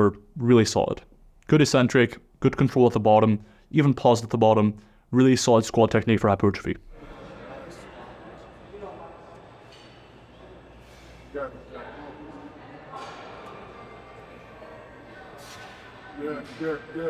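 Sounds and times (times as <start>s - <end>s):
room noise: 0.0s - 17.0s
faint voices speaking: 7.0s - 17.0s.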